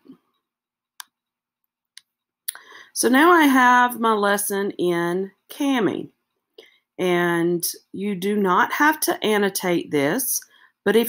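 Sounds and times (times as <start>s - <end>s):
intake of breath: 2.6s - 3.0s, 10.5s - 10.8s.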